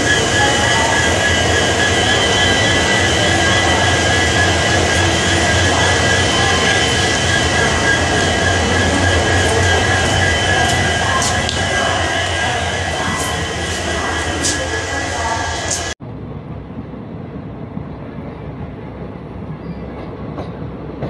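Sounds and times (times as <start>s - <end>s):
high whine: 0.0s - 16.8s
train low hum: 0.0s - 21.0s.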